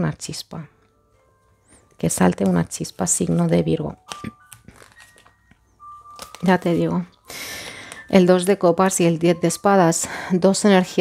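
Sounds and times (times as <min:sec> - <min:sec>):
quiet background music: 0:00.0 - 0:11.0
cards tapping and clicking: 0:02.3 - 0:06.8.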